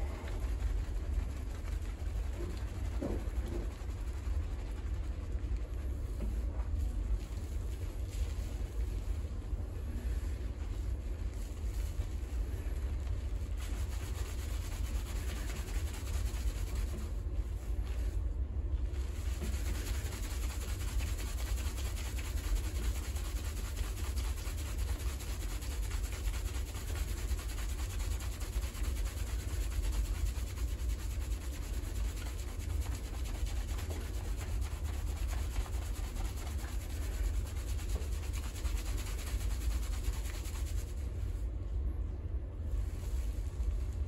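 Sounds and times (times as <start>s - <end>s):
fingers scrubbing lathered hair: 0.0s - 18.2s, 18.9s - 41.3s
low steady rumble: 0.0s - 44.0s.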